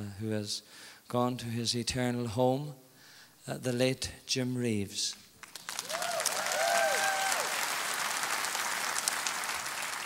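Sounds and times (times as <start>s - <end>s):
audience applauding: 5.4s - 10.0s.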